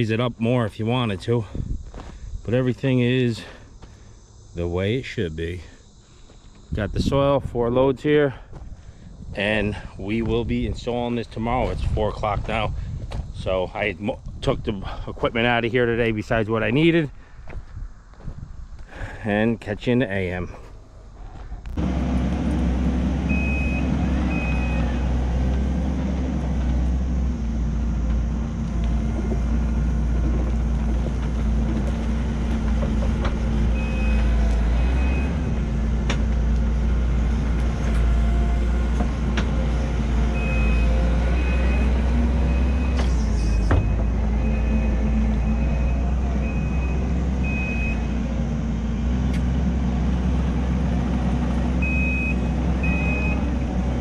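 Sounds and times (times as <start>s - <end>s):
diesel engine running: 20.4s - 54.0s
reverse alarm beeping: 23.2s - 25.2s, 33.7s - 35.5s, 40.3s - 48.2s, 51.8s - 53.6s.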